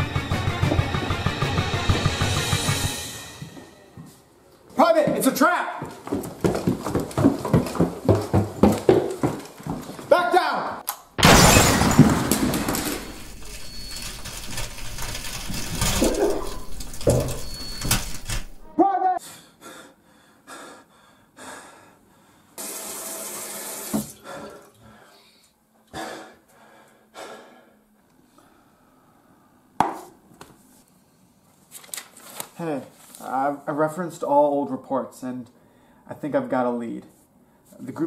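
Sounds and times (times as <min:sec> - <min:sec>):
loud crash: 0:11.2 - 0:16.2.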